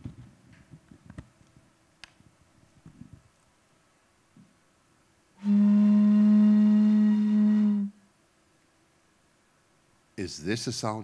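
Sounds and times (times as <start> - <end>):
blowing across bottle low tone: 5.4 - 8.1.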